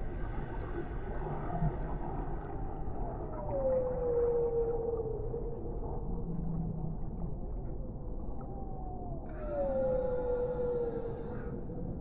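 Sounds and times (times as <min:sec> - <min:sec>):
whale song: 0:02.7 - 0:07.1, 0:07.8 - 0:12.0.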